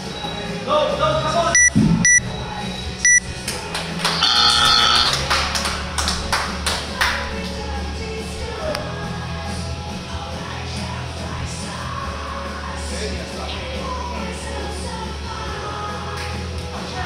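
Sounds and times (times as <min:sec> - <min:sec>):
background music: 0:00.0 - 0:17.0
long timer tone: 0:01.6 - 0:02.3, 0:03.0 - 0:03.2, 0:04.2 - 0:05.2
timer short beeps: 0:01.6 - 0:02.3, 0:03.0 - 0:03.2, 0:04.2 - 0:05.1.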